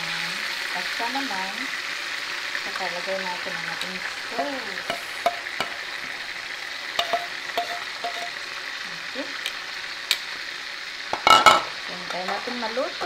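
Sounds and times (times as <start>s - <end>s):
fish sizzling in hot oil: 0.0s - 13.0s.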